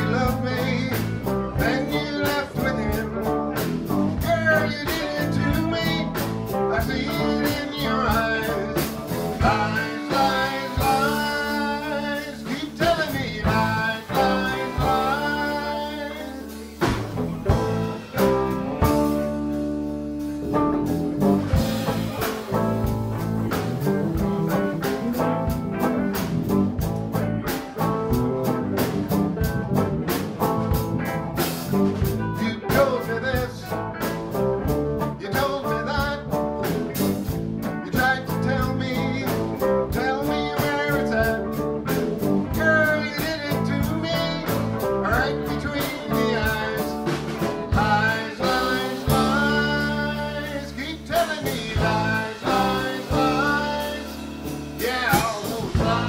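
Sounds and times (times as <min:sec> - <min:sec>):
blues band playing: 0:00.0 - 0:56.0.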